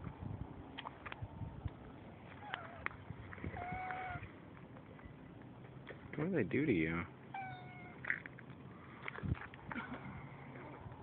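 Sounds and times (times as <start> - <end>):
cat meowing: 3.5 - 4.3, 7.3 - 8.0.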